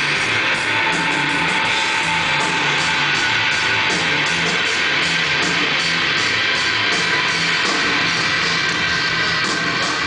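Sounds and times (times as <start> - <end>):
live rock band: 0.0 - 10.0.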